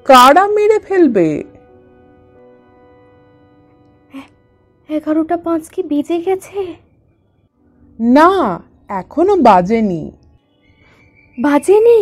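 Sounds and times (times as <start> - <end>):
soft background music chord: 0.0 - 12.0.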